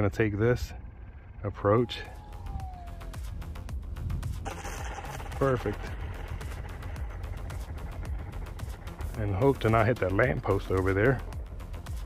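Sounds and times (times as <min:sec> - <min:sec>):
wind rumble on microphone: 0:00.6 - 0:09.6.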